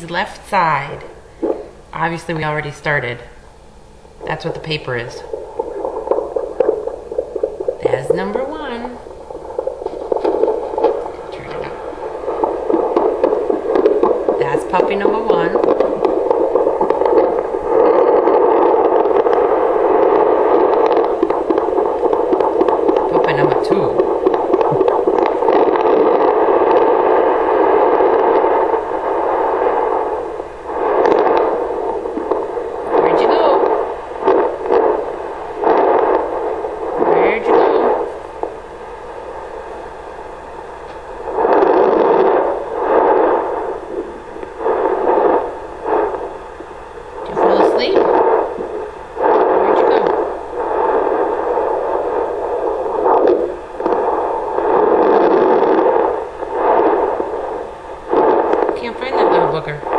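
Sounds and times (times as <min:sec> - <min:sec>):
doppler speaker static hiss: 0:00.0 - 0:59.9.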